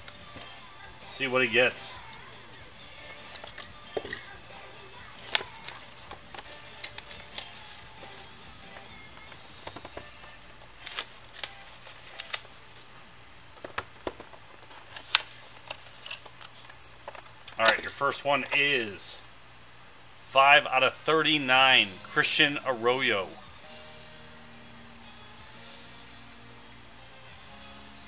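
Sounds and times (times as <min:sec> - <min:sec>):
cardboard and plastic rustling: 0:03.2 - 0:18.6
knife cutting shrink-wrap: 0:05.0 - 0:08.3, 0:10.3 - 0:12.9.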